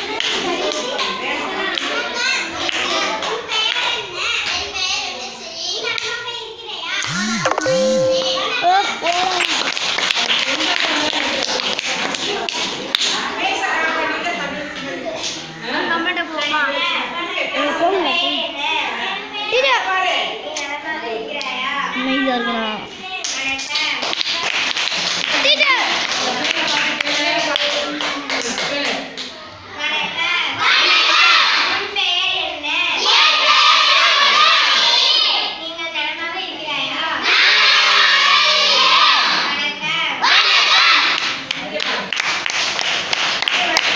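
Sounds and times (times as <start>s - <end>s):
children clapping: 0.0s - 2.0s, 2.6s - 4.6s, 9.0s - 13.3s, 23.2s - 29.3s, 40.4s - 43.9s
children speaking and calling out: 0.0s - 9.7s, 29.3s - 41.3s
steady held tone: 7.0s - 9.0s.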